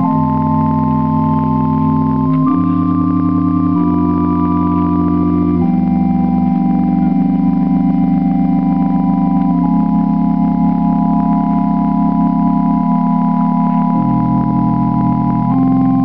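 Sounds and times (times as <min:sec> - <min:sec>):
organ playing sustained chords: 0:00.0 - 0:16.0.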